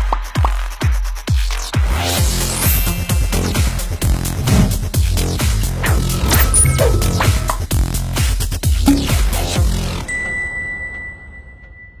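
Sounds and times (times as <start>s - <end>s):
electronic music: 5.8s - 7.9s, 8.8s - 9.6s
high electronic chime tone: 6.3s - 7.7s.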